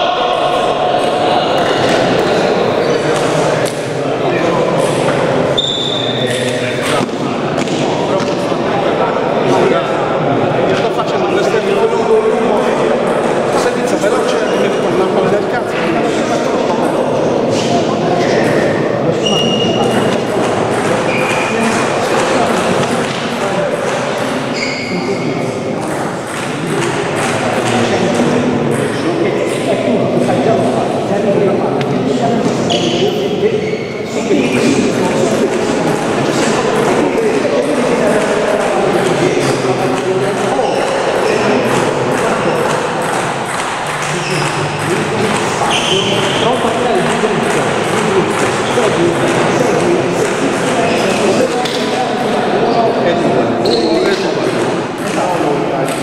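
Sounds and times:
voices talking: 0:00.0 - 0:56.0
table tennis ball bouncing: 0:18.4 - 0:24.9, 0:25.8 - 0:30.4, 0:35.3 - 0:52.4.

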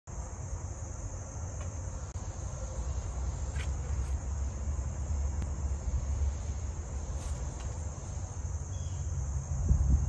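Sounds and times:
constant low rumble: 0:00.1 - 0:10.0
insects chirring: 0:00.1 - 0:10.0.

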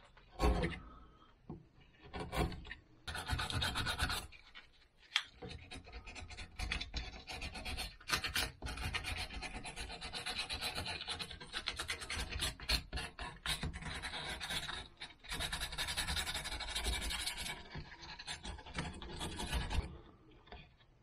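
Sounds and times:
carving tool scraping bark: 0:00.3 - 0:00.8, 0:02.0 - 0:19.9.

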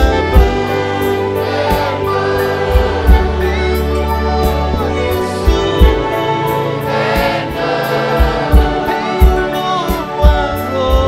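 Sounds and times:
drum and cymbal beat: 0:00.0 - 0:11.0
people singing: 0:00.0 - 0:11.0
violin ensemble: 0:00.0 - 0:11.0.

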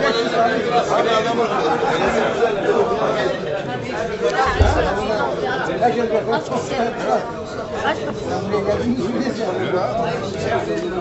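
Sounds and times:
chatter of people talking: 0:00.0 - 0:11.0
low thud: 0:04.4 - 0:05.4.

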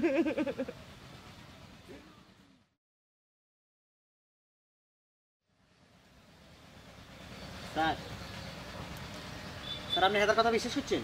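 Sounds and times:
low outdoor rumble: 0:00.0 - 0:02.8, 0:05.4 - 0:11.0.

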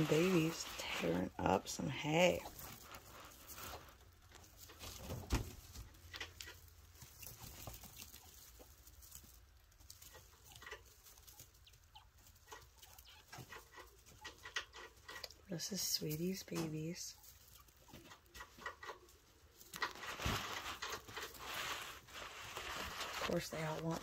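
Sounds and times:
rustling in dry hay: 0:00.0 - 0:14.3, 0:15.6 - 0:24.0.

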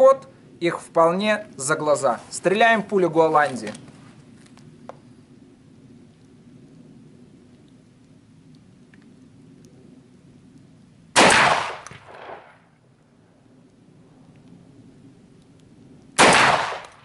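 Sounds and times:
shotgun shot: 0:11.2 - 0:12.6, 0:16.2 - 0:17.0.

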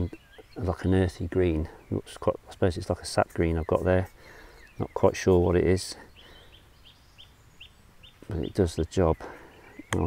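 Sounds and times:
small bird chirping faintly: 0:00.0 - 0:10.0.

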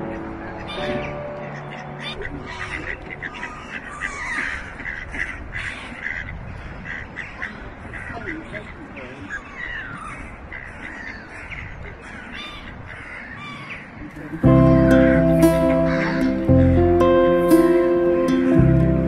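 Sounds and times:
birds calling: 0:00.0 - 0:19.0
steady low background noise: 0:00.0 - 0:19.0.

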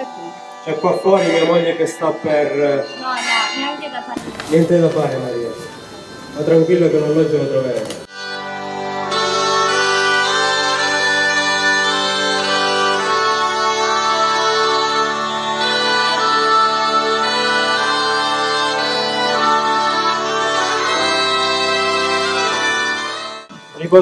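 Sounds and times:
bagpipe melody over drones: 0:00.0 - 0:24.0.

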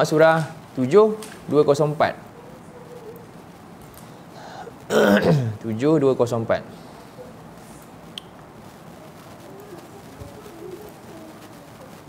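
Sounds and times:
room hiss: 0:00.0 - 0:12.0
bird cooing: 0:02.3 - 0:03.4, 0:06.9 - 0:07.4, 0:08.9 - 0:12.0.

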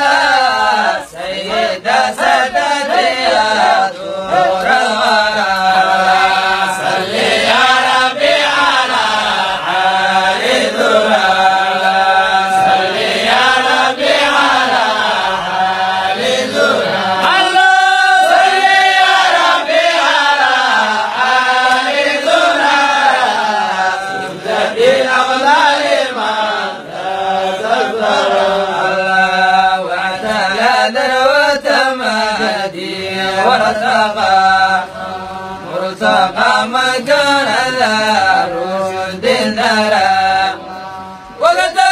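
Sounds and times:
man chanting melodically: 0:00.0 - 0:41.9.

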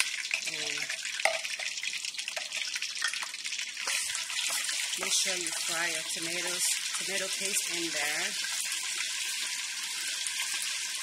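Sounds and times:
oil popping and crackling: 0:00.0 - 0:11.0
paste sizzling in hot oil: 0:00.0 - 0:11.0.

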